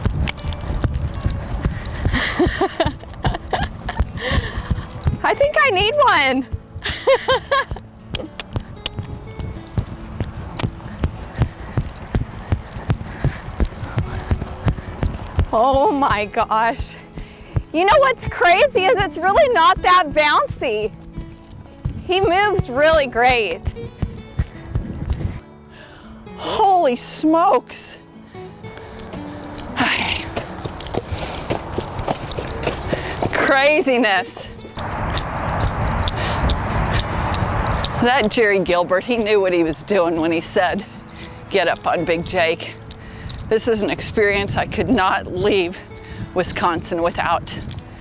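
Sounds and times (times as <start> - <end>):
horse hoofbeats on grass: 0.0 - 25.5, 28.7 - 48.0.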